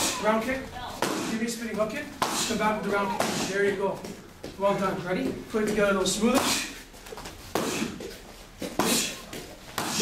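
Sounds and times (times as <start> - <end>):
kicks slapping a kick paddle: 9.7 - 10.0.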